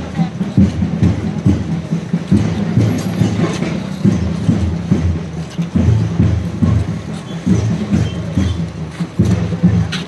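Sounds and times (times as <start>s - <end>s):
steady low beat: 0.0s - 9.9s.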